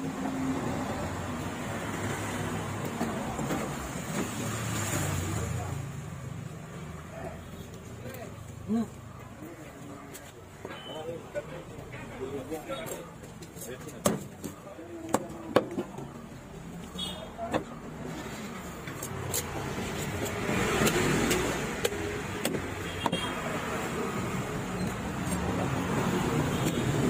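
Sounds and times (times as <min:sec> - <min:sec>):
knife chopping fish on wood: 0:20.2 - 0:22.8.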